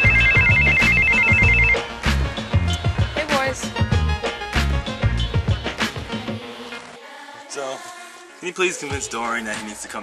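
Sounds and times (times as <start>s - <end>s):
phone ringtone warbling trill: 0.0s - 2.0s.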